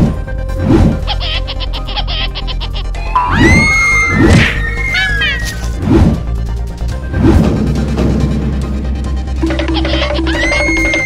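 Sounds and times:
background music: 0.0 - 11.0
high gliding wail-like cries: 3.0 - 5.7, 10.2 - 11.0.

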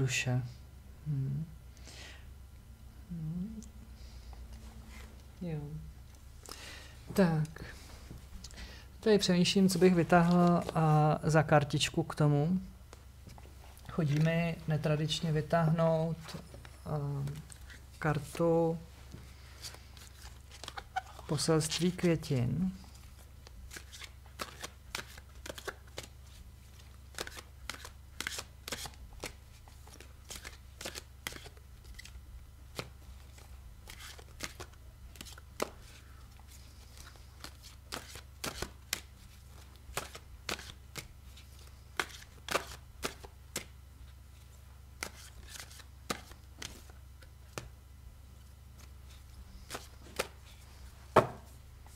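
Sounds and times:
cards being shuffled by hand: 9.2 - 11.2, 13.3 - 47.8, 48.4 - 51.9.

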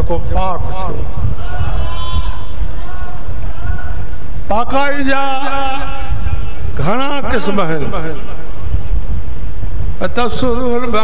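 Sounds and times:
steady low rumble: 0.0 - 1.8.

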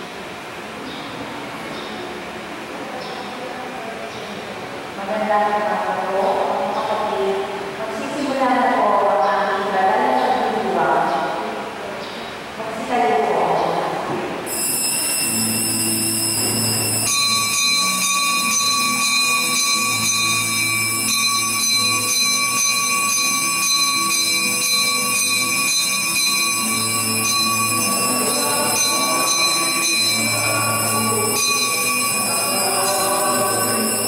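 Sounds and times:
organ-like sustained chords: 14.5 - 34.0
faint singing: 27.8 - 34.0.

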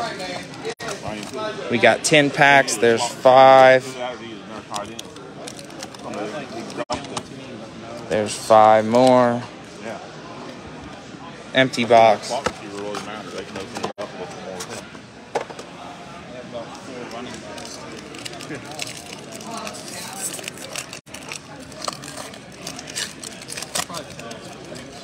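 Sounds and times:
crowd chatter: 0.0 - 25.0
foil wrapper crinkling and tearing: 17.5 - 25.0.

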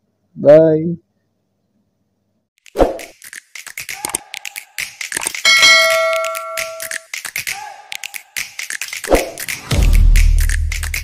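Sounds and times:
beatbox-style percussive beat: 2.7 - 11.0
bright bell-like ding: 5.5 - 6.9.

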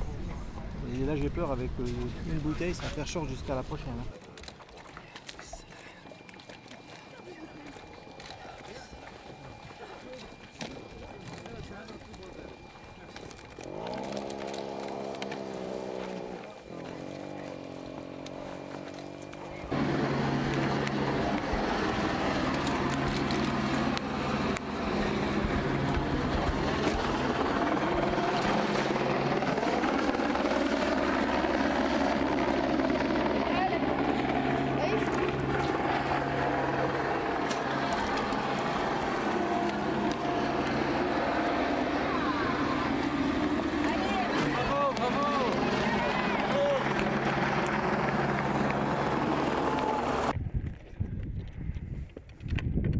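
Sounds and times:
voices: 0.0 - 50.3
engine running with low hum: 4.9 - 50.4.

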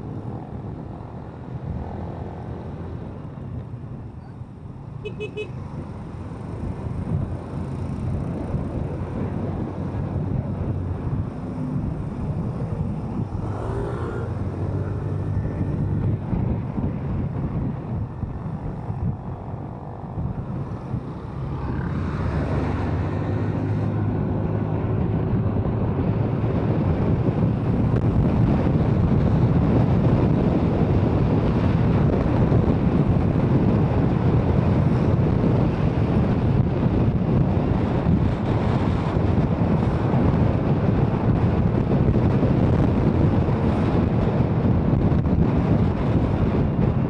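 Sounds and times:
wind and road noise: 0.0 - 47.0.

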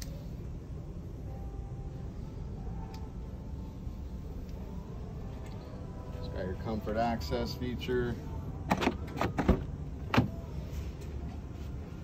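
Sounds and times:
car door handle and latch clicks: 8.7 - 10.4.

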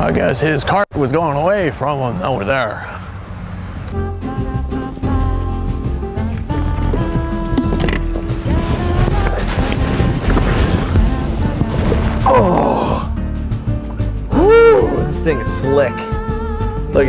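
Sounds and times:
background music with held tones: 3.9 - 17.0.

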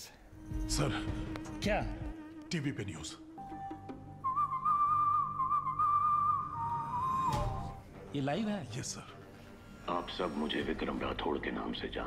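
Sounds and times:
whistling held note: 3.6 - 7.8.

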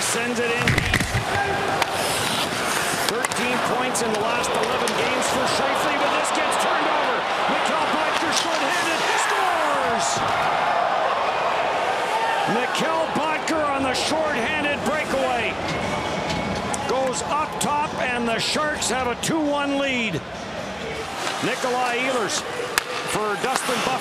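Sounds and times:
crowd din of voices: 0.0 - 24.0
players hitting the boards: 0.5 - 10.4
sticks hitting puck: 0.6 - 5.5, 7.6 - 9.7, 21.2 - 24.0.

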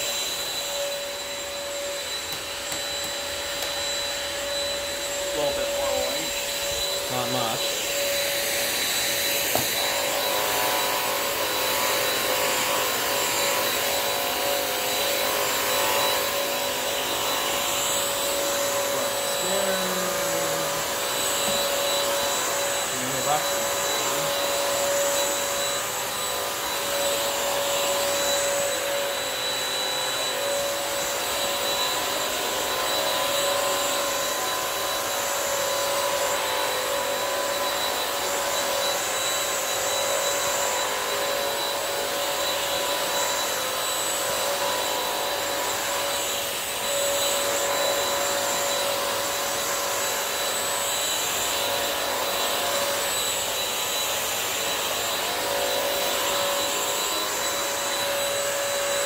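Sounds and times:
mop vacuum motor whine: 0.0 - 59.0.

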